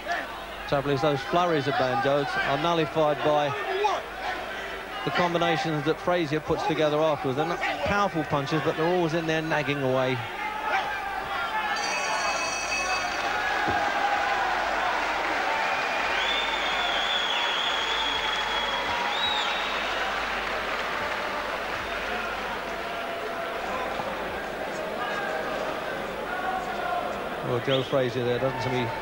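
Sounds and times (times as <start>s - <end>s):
crowd cheering and applauding: 10.9s - 27.6s
ringing tone: 11.8s - 13.4s
whistles: 15.9s - 20.0s.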